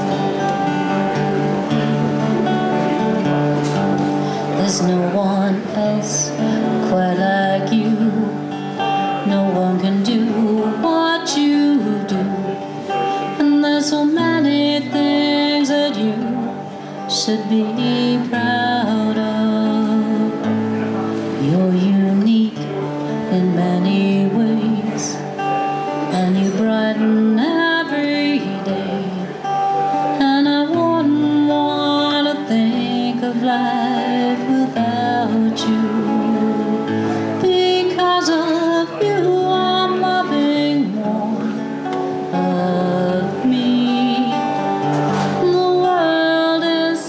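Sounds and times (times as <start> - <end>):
acoustic guitar: 0.0 - 47.0
woman singing: 2.5 - 20.6, 21.4 - 47.0.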